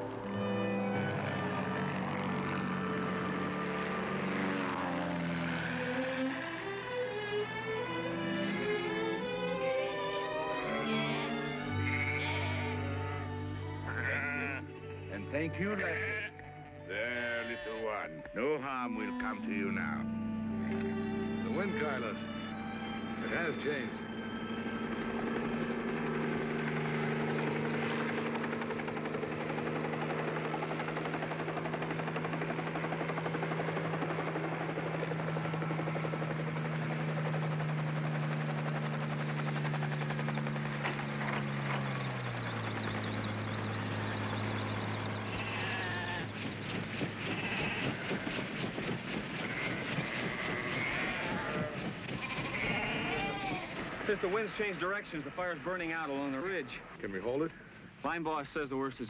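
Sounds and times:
helicopter engine and rotor: 0:00.0 - 0:16.3, 0:19.0 - 0:56.5
sheep bleating: 0:11.7 - 0:14.7, 0:15.6 - 0:18.2, 0:45.3 - 0:46.3, 0:47.3 - 0:48.0, 0:49.5 - 0:53.9.

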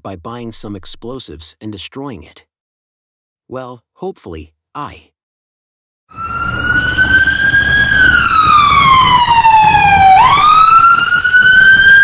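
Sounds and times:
police siren wailing: 0:06.1 - 0:12.0.

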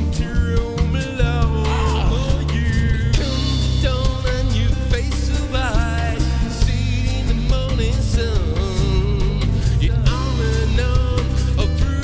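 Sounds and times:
bass guitar: 0:00.0 - 0:12.0
drums: 0:00.0 - 0:12.0
electric guitar: 0:00.0 - 0:12.0
wavering bent guitar lead: 0:01.6 - 0:06.6.

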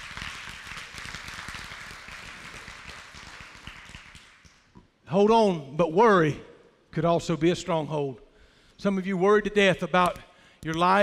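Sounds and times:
congregation applauding: 0:00.0 - 0:04.7.

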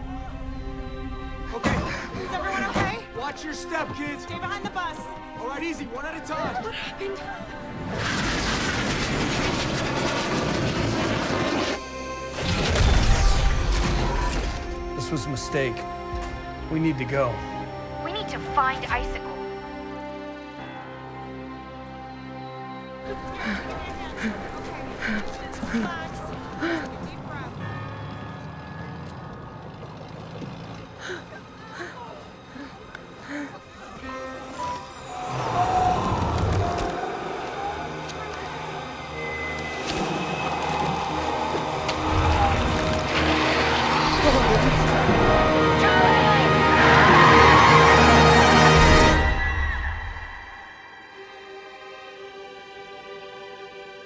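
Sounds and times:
orchestral music: 0:00.0 - 0:29.1, 0:32.1 - 0:54.0.

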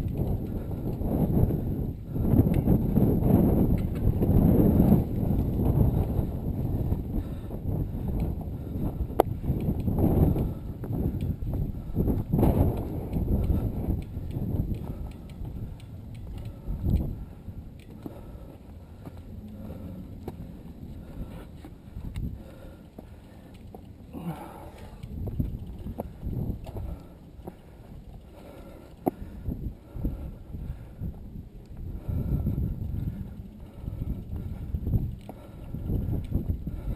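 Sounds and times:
mountain bike rattling and knocking: 0:00.0 - 0:18.3, 0:22.2 - 0:29.6
wind rumble: 0:00.0 - 0:36.9.

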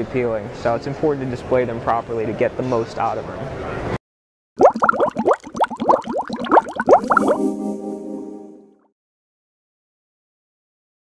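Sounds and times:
upward-sliding notes: 0:07.0 - 0:08.9
held chord: 0:07.1 - 0:08.9.

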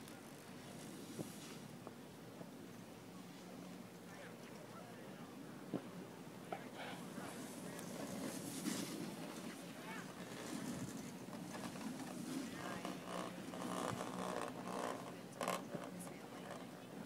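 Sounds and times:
faint indistinct voices: 0:02.3 - 0:17.0.

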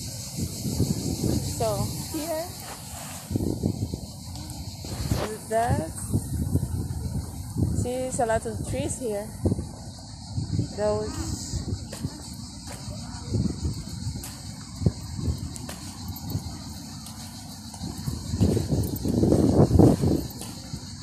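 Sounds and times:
rumbling wind gusts: 0:00.0 - 0:21.0.

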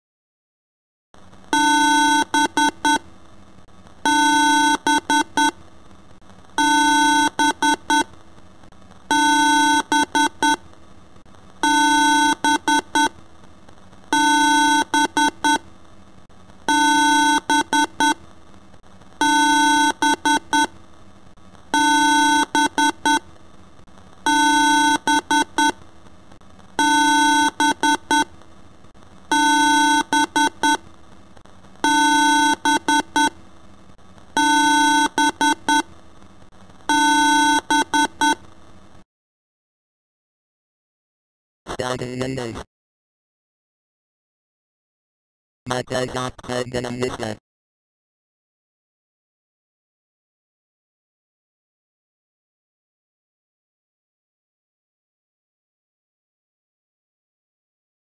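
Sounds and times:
electronic alarm beeping: 0:34.4 - 0:35.8.

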